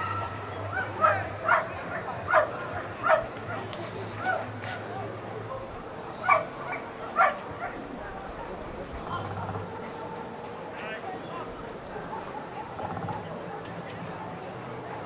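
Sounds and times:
dog yelping barks: 0.7 - 3.3, 6.2 - 7.8.

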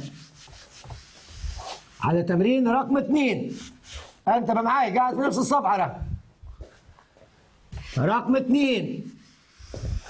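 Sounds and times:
eraser rubbing across whiteboard: 0.0 - 2.1, 3.4 - 4.2, 9.1 - 10.0.

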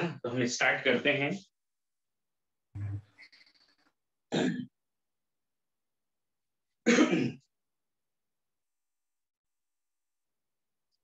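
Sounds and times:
man clearing his throat: 4.3 - 4.7, 6.8 - 7.5.

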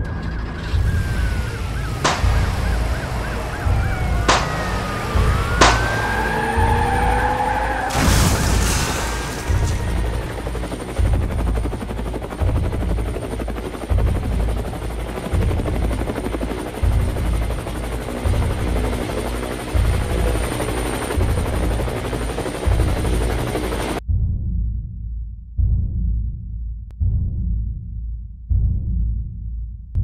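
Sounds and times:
helicopter rotor chopping: 0.1 - 24.0
slow music beat with heavy bass: 1.2 - 7.6.

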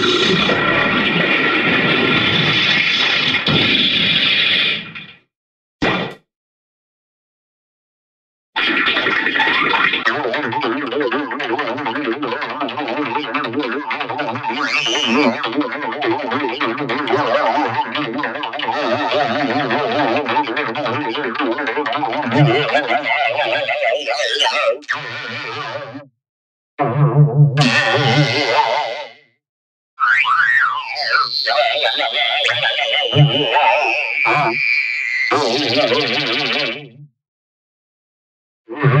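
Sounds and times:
voice with heavy effects: 14.6 - 15.8, 17.1 - 25.8, 27.6 - 29.3, 30.0 - 36.8.

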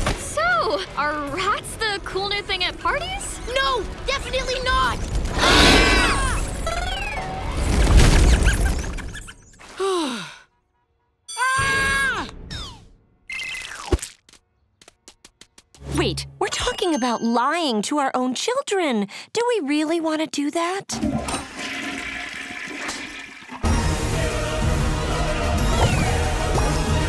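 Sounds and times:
music: 0.0 - 7.8, 15.8 - 18.0, 23.6 - 27.0
toilet flushing: 21.0 - 23.8.

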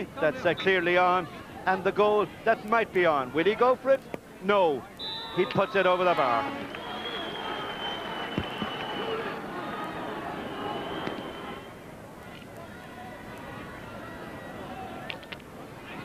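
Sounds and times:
stadium crowd cheering: 5.0 - 15.2.

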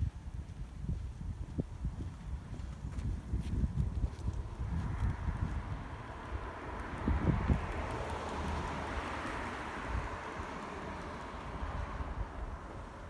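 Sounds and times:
wind buffeting microphone: 0.0 - 13.0
car passing: 3.9 - 13.0.

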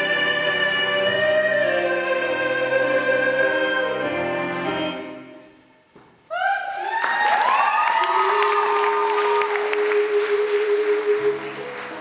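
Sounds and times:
music: 0.0 - 5.9, 8.7 - 12.0
audience applause and cheering: 6.3 - 12.0.

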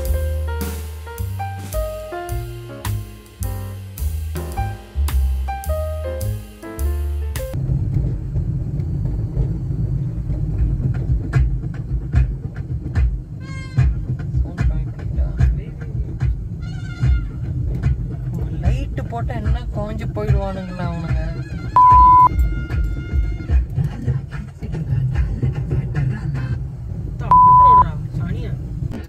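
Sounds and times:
background music: 0.0 - 7.6
car cabin rumble on dirt road: 7.5 - 22.3
short high-pitched sounds: 21.8 - 22.3.

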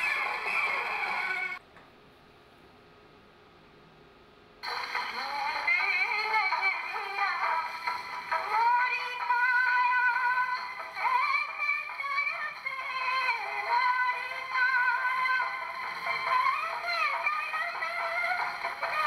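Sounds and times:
tinny gramophone record melody: 0.0 - 1.6, 4.6 - 19.0.

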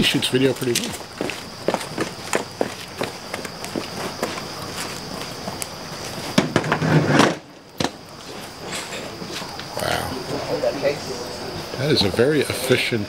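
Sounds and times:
insects clicking on hot light: 0.0 - 13.0.

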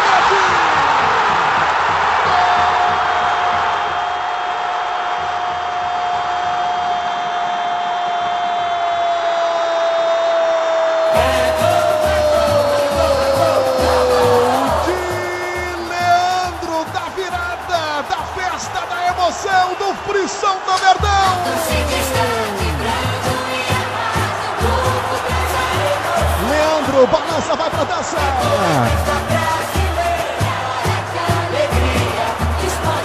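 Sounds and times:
commentator shouting: 11.1 - 23.7, 25.6 - 29.6
jingle with beat and singing: 21.1 - 27.3, 28.2 - 33.0.

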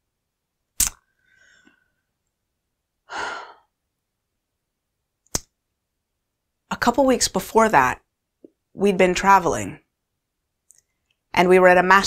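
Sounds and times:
mouth click: 0.8 - 1.0, 5.3 - 5.5
woman sighing: 3.1 - 3.7.

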